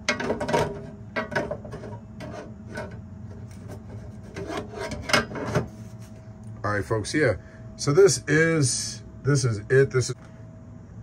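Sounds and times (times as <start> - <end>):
metal case scraping on stone countertop: 0.1 - 5.8.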